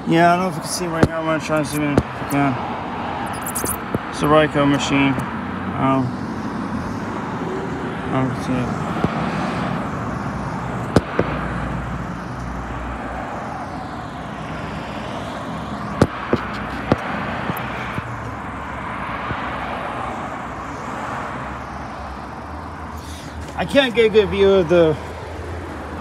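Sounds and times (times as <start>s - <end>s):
cars going by: 0.0s - 26.0s
sharp clicks: 10.8s - 11.4s.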